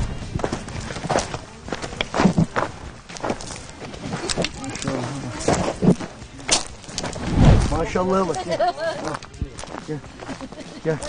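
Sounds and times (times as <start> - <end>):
walking stick tapping ground: 0.0 - 7.2, 8.2 - 11.0
footsteps on gravel: 0.0 - 11.0.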